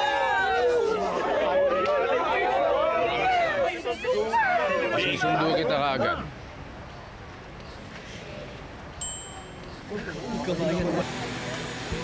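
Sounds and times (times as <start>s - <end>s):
small crowd chattering: 0.0s - 12.0s.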